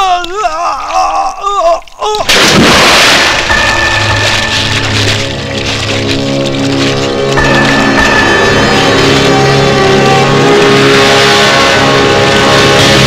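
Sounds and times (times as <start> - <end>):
music with long held notes: 3.3 - 13.0.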